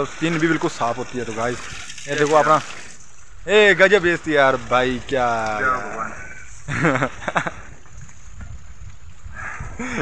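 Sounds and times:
wind buffeting microphone: 3.3 - 10.0
man speaking: 3.4 - 6.4.

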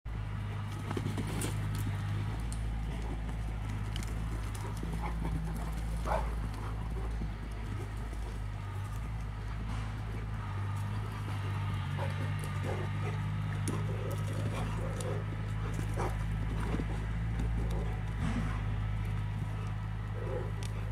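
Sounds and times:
low hum: 0.1 - 20.9
dog paws scuffing on dirt: 0.5 - 20.9.

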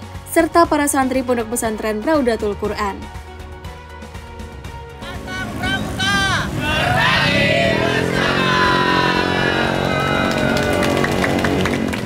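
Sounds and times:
motorbike traffic: 4.4 - 12.0
group shouting in chorus: 5.0 - 11.6.

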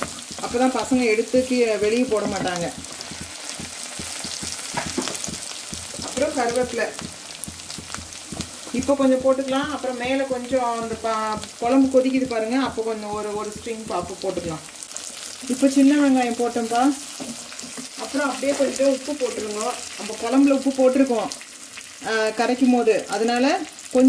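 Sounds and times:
food sizzling in hot oil: 0.0 - 24.0
woman talking: 0.4 - 2.8, 6.0 - 7.1, 8.7 - 14.7, 15.4 - 17.0, 18.0 - 21.4, 22.0 - 24.0.

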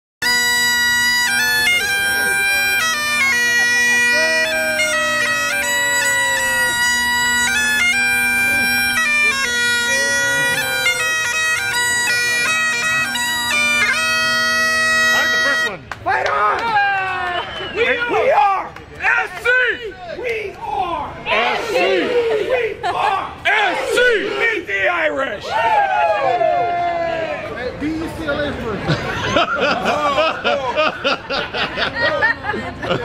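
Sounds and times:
bagpipes playing a tune: 0.2 - 15.8.

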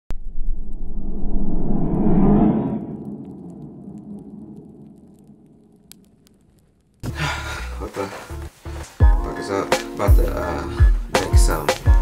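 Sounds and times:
low rumbling boom: 0.1 - 6.3.

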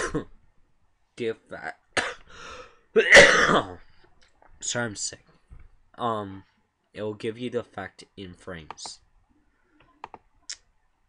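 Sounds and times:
computer mouse clicks: 8.7 - 9.0, 9.8 - 10.7.

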